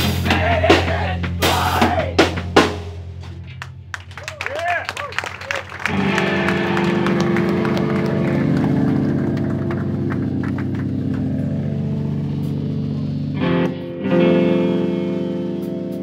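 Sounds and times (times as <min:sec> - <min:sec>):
drum hits: 0:00.0 - 0:03.9
electric guitar and bass chord: 0:05.8 - 0:16.0.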